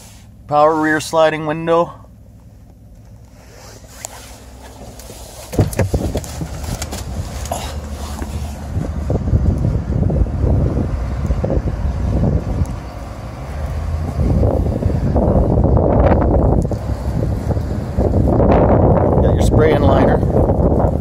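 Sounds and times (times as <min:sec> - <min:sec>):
wind buffeting microphone: 0:05.5 - 0:21.0.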